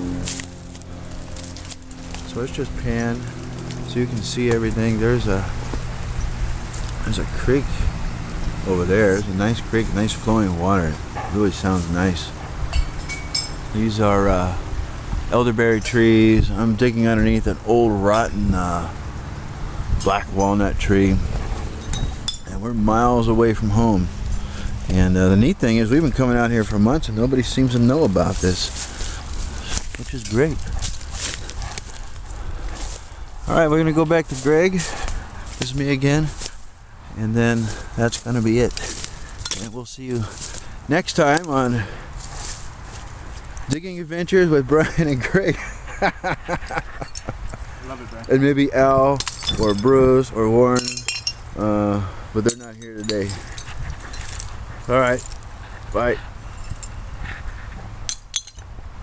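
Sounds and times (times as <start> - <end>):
metal rake scraping soil: 0.0 - 5.8
rake clinking against debris: 0.0 - 14.5, 21.5 - 25.0, 25.7 - 36.8, 37.5 - 44.0, 44.8 - 51.8, 52.4 - 57.3, 58.0 - 58.7
rustling dry leaves: 0.0 - 16.9, 18.6 - 59.0.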